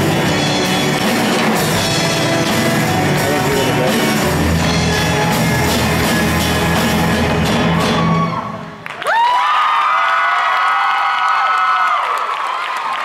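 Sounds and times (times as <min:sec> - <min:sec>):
bass guitar and drums: 0:00.0 - 0:08.8
audience cheering: 0:00.6 - 0:13.0
high whoops: 0:07.9 - 0:13.0.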